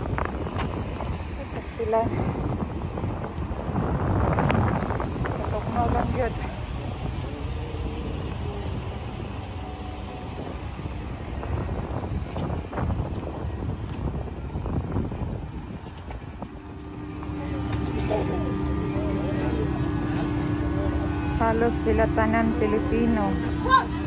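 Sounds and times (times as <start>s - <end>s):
wind on microphone: 0.0s - 24.0s
faint voices: 4.6s - 24.0s.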